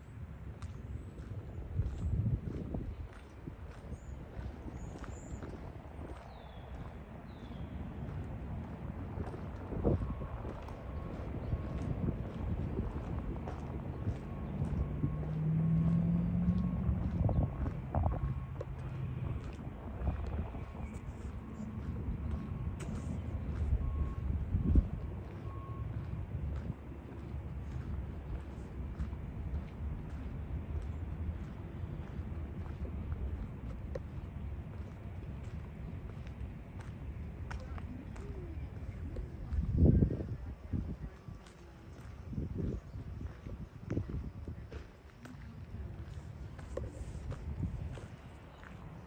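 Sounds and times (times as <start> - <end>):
distant traffic rumble: 0.0 - 49.0
vehicle engine hum: 0.0 - 49.0
wind buffeting microphone: 0.0 - 49.0
footsteps on concrete path: 0.5 - 49.0.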